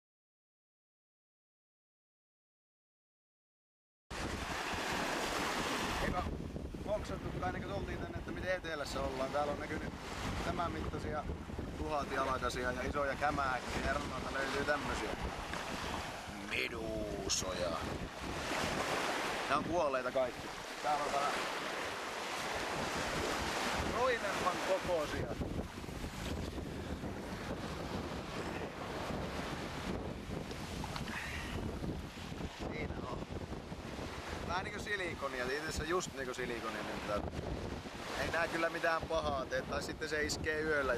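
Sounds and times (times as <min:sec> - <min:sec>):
wind buffeting microphone: 0:04.1 - 0:35.9, 0:36.8 - 0:40.9
sea surf washing on shore: 0:04.1 - 0:40.9.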